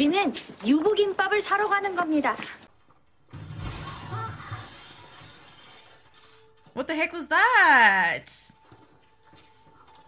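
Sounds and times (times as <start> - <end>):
glass shattering: 3.3 - 6.4.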